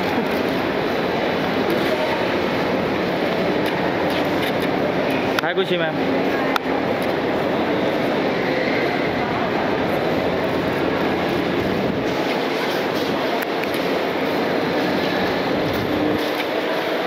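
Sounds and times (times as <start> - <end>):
rumbling terminal hubbub: 0.0 - 17.0.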